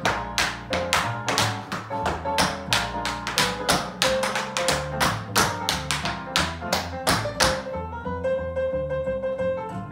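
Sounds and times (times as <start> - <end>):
tap shoes on wooden floor: 0.0 - 7.7
backing music: 0.0 - 9.9.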